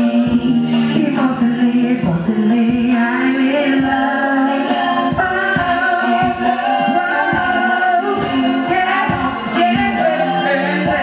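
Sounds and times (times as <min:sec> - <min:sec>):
several voices singing: 0:00.0 - 0:11.0
steady bass drum beat: 0:00.0 - 0:11.0.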